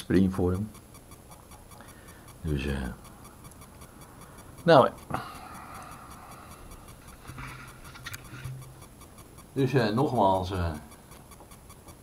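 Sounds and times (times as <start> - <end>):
faint rustling: 6.5 - 9.4.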